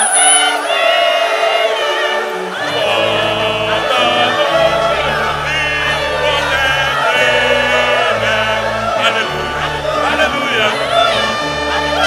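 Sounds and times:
choir singing gospel: 0.0s - 12.0s
held bass notes: 2.6s - 12.0s.

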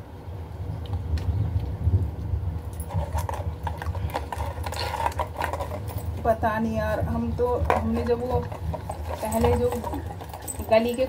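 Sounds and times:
steady low rumble: 0.0s - 11.0s
dog licking and chewing: 2.8s - 6.2s.

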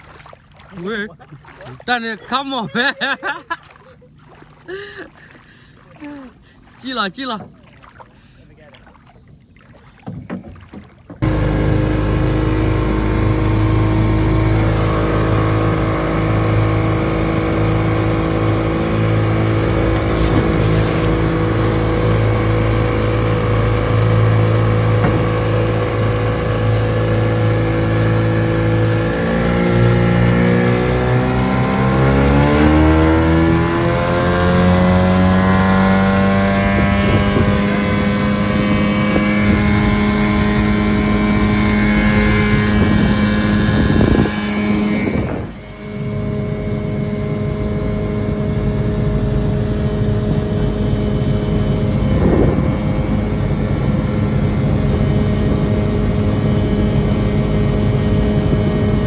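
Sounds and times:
outboard motor running: 0.0s - 59.0s.

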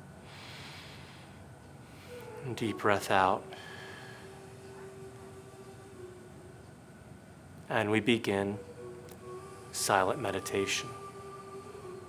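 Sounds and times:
deep breath through the nose: 0.2s - 2.2s.

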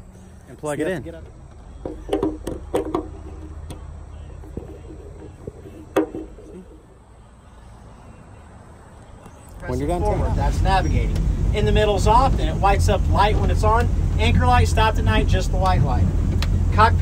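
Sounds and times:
wind rumble on microphone: 10.0s - 17.0s.

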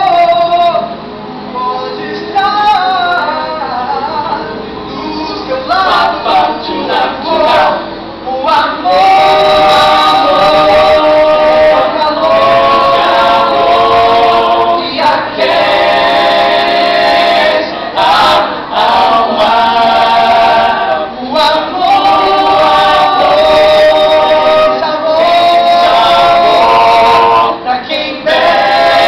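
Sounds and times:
a cappella vocal harmony: 0.0s - 29.0s.

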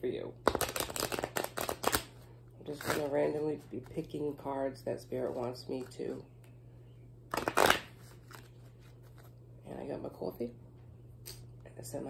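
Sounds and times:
cards being shuffled: 0.4s - 4.0s, 7.3s - 9.4s.

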